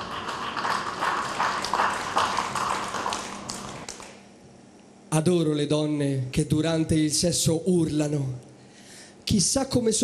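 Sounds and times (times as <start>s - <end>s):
audience clapping: 0.0s - 4.2s.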